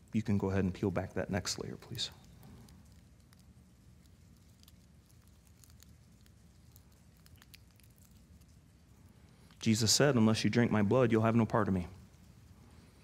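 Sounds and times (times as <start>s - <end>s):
faint crackles of film peeling: 0.0s - 13.0s.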